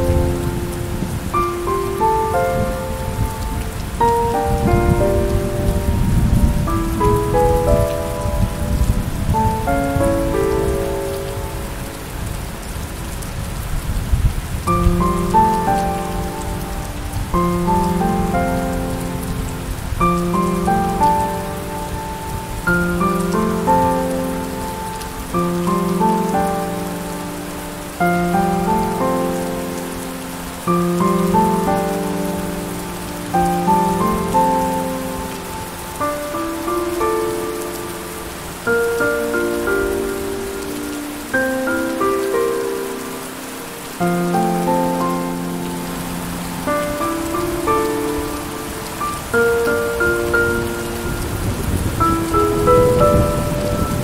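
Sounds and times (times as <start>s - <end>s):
gentle piano music: 0.0s - 54.0s
steady rain hiss: 0.0s - 54.0s.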